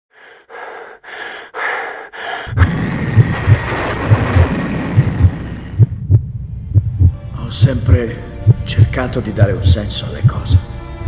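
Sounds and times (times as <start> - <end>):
heavy breathing: 0.1 - 2.7
steady rushing noise: 2.4 - 7.2
slow heartbeat: 2.4 - 7.3, 8.4 - 8.7.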